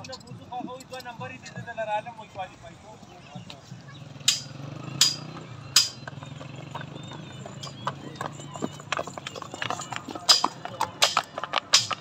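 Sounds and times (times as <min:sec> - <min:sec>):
horse hooves clopping on hard ground: 0:06.0 - 0:12.0.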